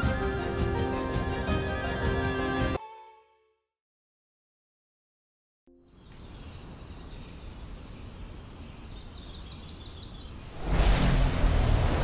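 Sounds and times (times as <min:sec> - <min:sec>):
faint bird chirps: 0:05.7 - 0:10.5
loud rushing whoosh: 0:10.4 - 0:12.0.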